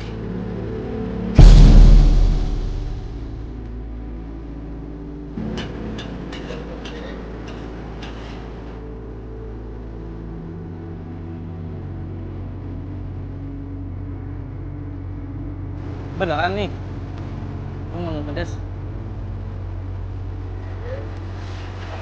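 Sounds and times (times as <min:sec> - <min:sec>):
thump: 0:01.4 - 0:03.6.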